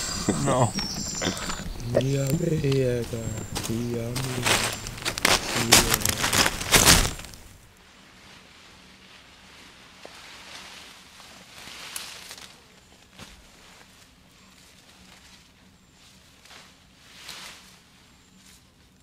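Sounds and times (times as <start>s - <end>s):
men laughing and talking: 0.0s - 6.7s.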